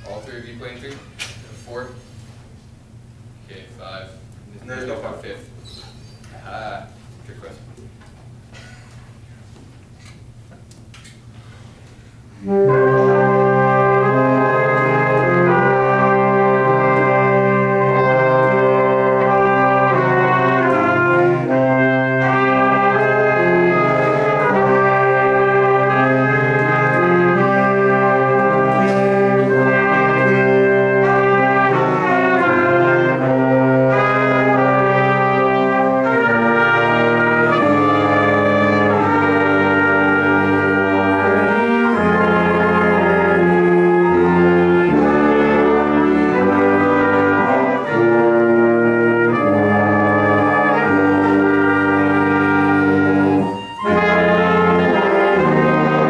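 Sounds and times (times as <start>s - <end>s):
brass ensemble playing chords: 11.4s - 56.0s.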